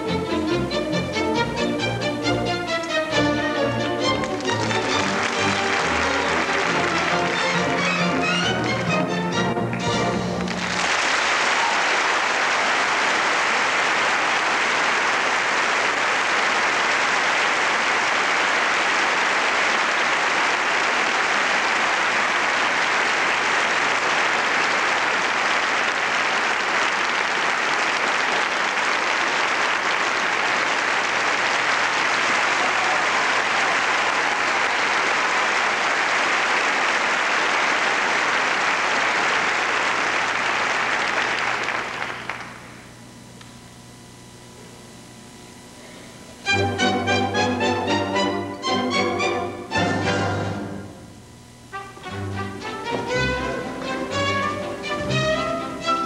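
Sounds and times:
audience applauding: 3.2s - 42.9s.

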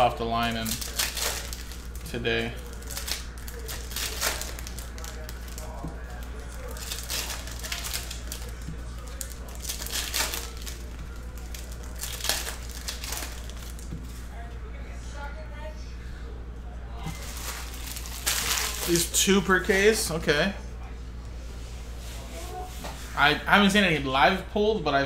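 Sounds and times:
steady low hum: 0.0s - 25.0s
foil wrapper tearing and crinkling: 0.4s - 13.9s, 17.1s - 19.2s.

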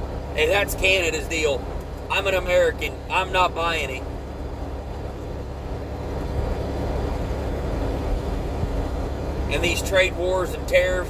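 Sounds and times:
truck engine and road drone: 0.0s - 11.0s.

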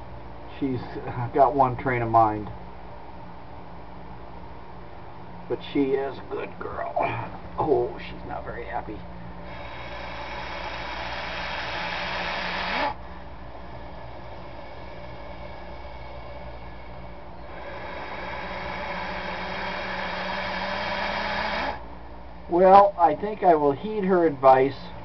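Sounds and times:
snake hissing: 9.4s - 13.0s, 13.6s - 21.8s.

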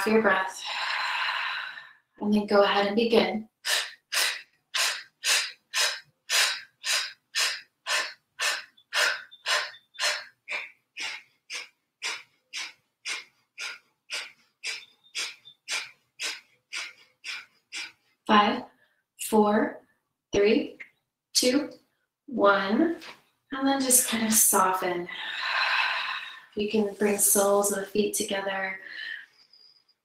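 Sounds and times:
forceful rhythmic exhales: 0.5s - 2.2s, 3.5s - 19.0s, 24.1s - 27.7s.

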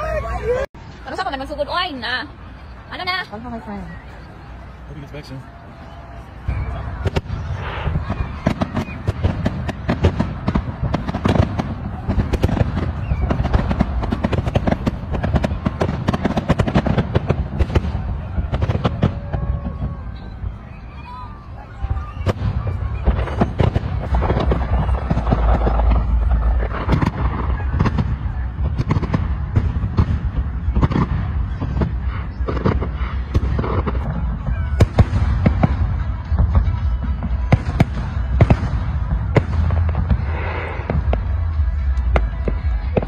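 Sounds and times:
fireworks bangs and crackles: 0.0s - 43.0s
low rumble: 16.8s - 43.0s.

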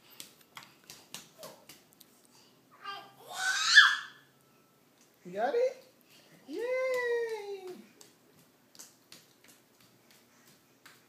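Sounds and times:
bare feet tapping on hardwood floor: 0.0s - 1.9s, 6.5s - 11.0s.

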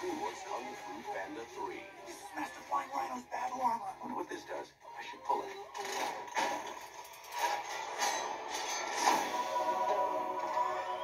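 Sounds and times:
movie trailer music from tv speaker: 0.0s - 11.0s.

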